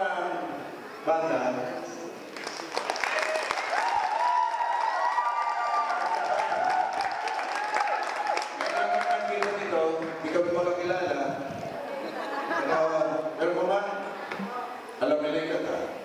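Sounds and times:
audience applause: 2.3s - 10.2s.

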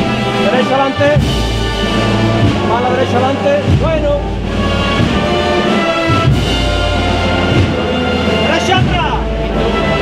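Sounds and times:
brass band playing march: 0.0s - 10.0s
low drum beats: 0.0s - 10.0s.

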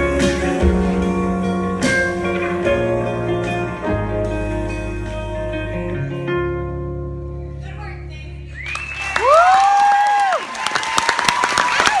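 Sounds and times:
music: 0.0s - 9.6s
whooping cheers: 8.5s - 12.0s
audience applause: 8.6s - 12.0s.

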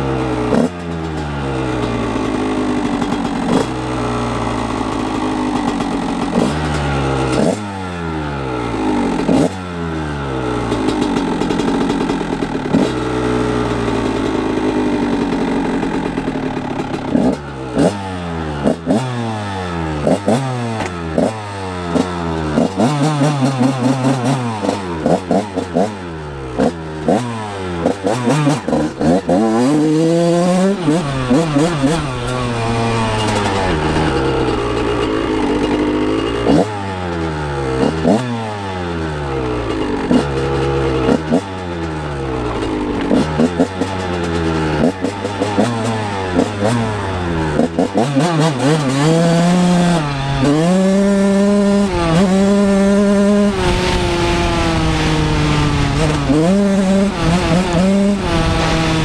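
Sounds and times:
two-stroke engine revving: 0.0s - 59.0s.

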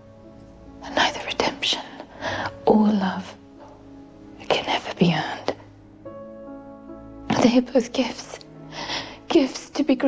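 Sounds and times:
quiet music of held notes: 0.0s - 10.0s.

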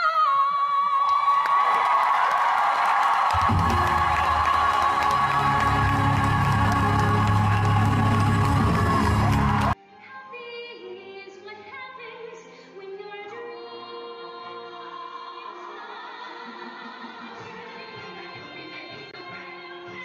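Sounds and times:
audience cheering and applause: 1.0s - 9.8s
orchestra closing chords: 3.4s - 9.8s.

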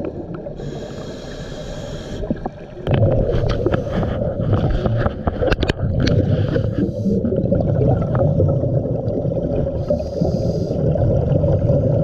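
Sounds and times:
underwater regulator bubbles: 1.6s - 12.0s.

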